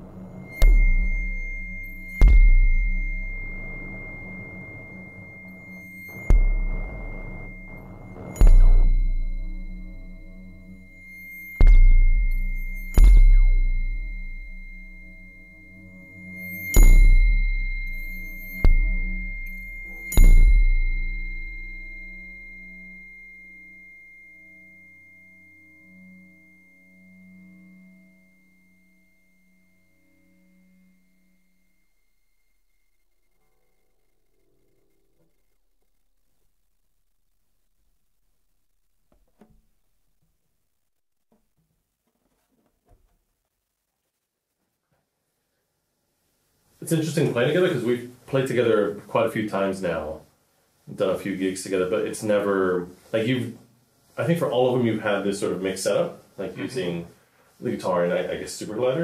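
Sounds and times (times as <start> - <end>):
low drone: 0.0 - 31.8
high ringing tone: 0.0 - 36.0
low wavering hum: 0.0 - 36.1
loud drum hit with deep boom: 0.5 - 4.1, 6.3 - 10.2, 11.6 - 14.9.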